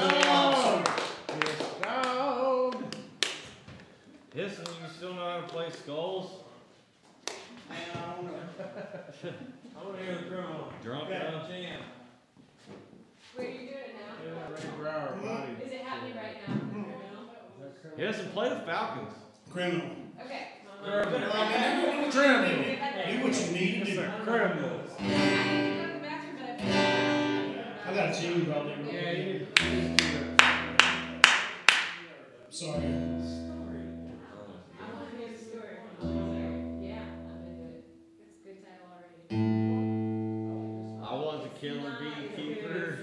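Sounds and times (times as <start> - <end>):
acoustic guitar strummed chords: 25.0 - 27.8, 29.6 - 31.6, 32.6 - 34.5, 36.0 - 38.4, 39.3 - 41.6.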